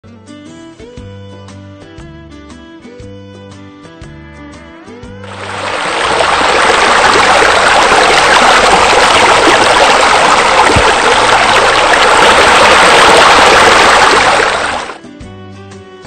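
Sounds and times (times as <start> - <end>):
rush of falling water: 5.3 - 15.0.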